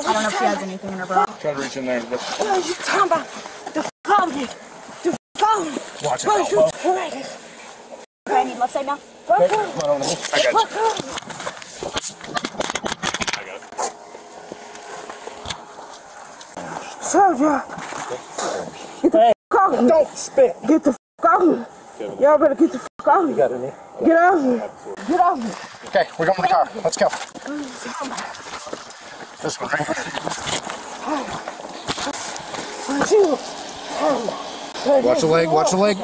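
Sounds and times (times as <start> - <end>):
camera rubbing against clothing: 9.6 - 17.0, 25.4 - 33.9.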